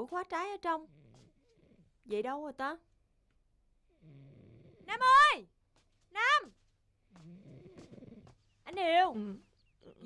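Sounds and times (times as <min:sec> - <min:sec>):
man snoring faintly: 0:03.9 - 0:04.9, 0:07.1 - 0:08.4.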